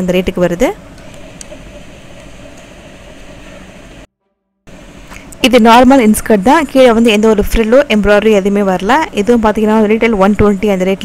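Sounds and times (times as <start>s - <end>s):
steady hum and hiss: 0.0s - 4.1s, 4.7s - 11.0s.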